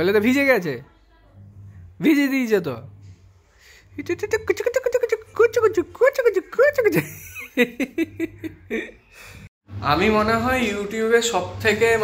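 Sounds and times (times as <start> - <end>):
people talking: 4.0 - 7.4, 9.8 - 12.0.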